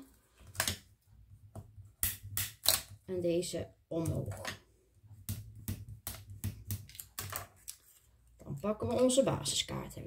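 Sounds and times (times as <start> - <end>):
card stock being folded: 6.1 - 8.4.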